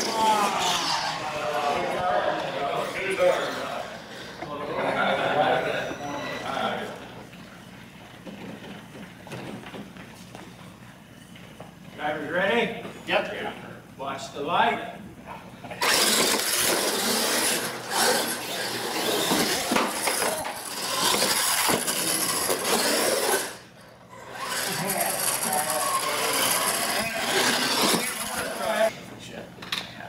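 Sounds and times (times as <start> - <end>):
radio-controlled trucks racing: 0.0 - 6.6, 15.8 - 28.9.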